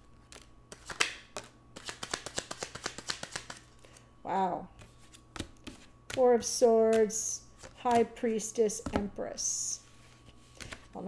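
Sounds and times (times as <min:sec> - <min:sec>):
cards snapping: 0:00.2 - 0:03.7
cards clicking while shuffled: 0:00.2 - 0:04.0, 0:10.5 - 0:11.0.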